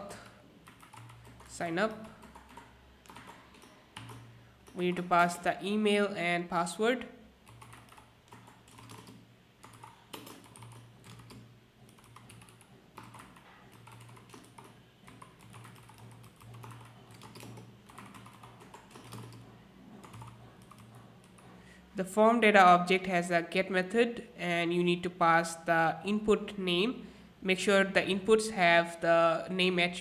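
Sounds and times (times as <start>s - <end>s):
typing on computer keyboard: 0.2s - 5.1s, 7.4s - 21.5s.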